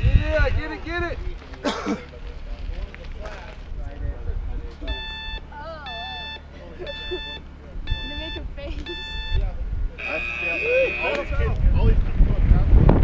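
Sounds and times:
long high-pitched tone: 0:04.8 - 0:11.4
short timer beeps: 0:04.8 - 0:11.4.

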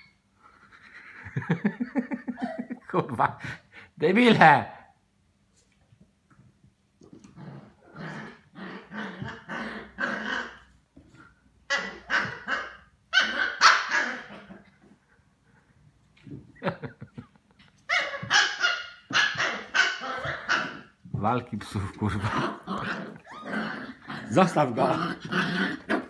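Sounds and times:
small dogs barking and growling: 0:07.0 - 0:15.0, 0:17.8 - 0:21.1, 0:22.1 - 0:26.0.

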